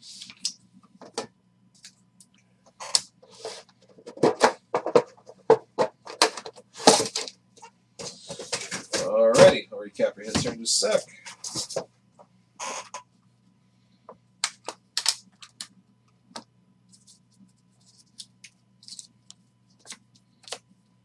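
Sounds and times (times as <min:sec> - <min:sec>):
man speaking: 0:09.0 - 0:11.2.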